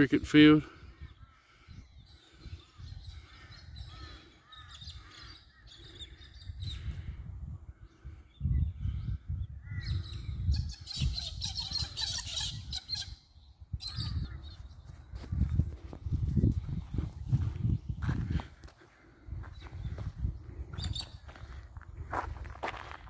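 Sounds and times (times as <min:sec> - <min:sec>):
birds calling: 0:00.0 - 0:16.1, 0:17.4 - 0:23.0
wind rumble on microphone: 0:00.8 - 0:23.0.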